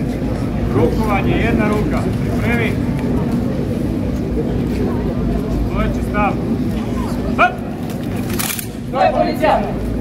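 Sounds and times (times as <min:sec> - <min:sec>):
crowd chatter: 0:00.0 - 0:10.0
steady low rumble: 0:00.0 - 0:10.0.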